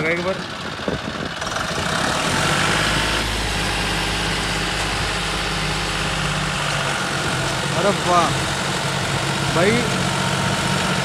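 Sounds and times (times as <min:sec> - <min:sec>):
rotary tiller working soil: 0:00.0 - 0:11.0
tractor diesel engine running: 0:00.0 - 0:11.0.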